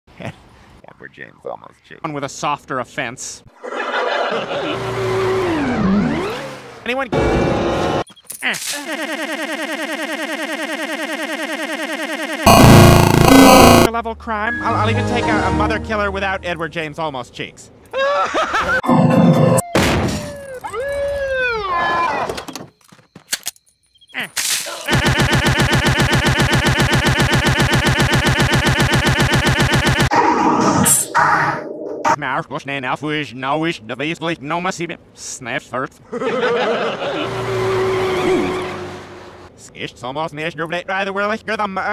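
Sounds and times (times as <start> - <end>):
stuttering cartoon audio loop: 8.4 - 13.9, 24.1 - 30.2
harsh distorted blast: 12.4 - 13.9, 24.9 - 30.9.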